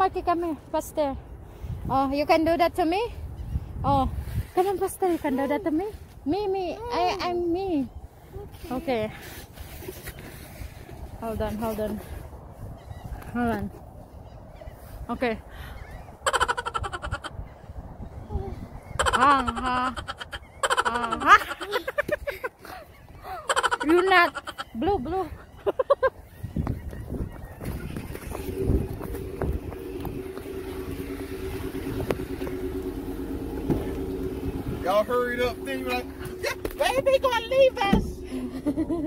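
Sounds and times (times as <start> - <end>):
wind buffeting microphone: 0.0 - 20.6, 24.1 - 39.0
car engine hum from inside: 27.8 - 39.0.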